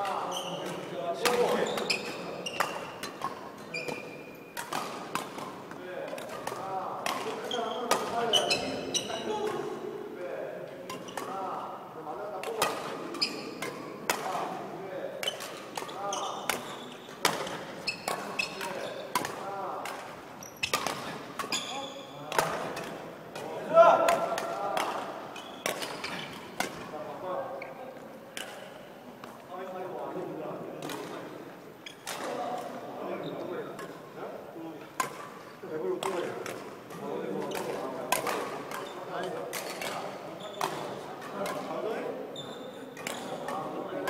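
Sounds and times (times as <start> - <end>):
rackets hitting shuttlecocks: 0.0 - 9.8, 12.2 - 27.1, 28.3 - 29.4, 30.8 - 31.4, 34.9 - 42.2, 42.9 - 44.0.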